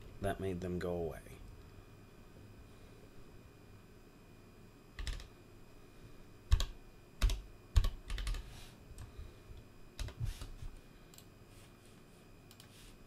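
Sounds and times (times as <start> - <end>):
keyboard keys clicking: 5.0 - 5.3, 6.5 - 8.4.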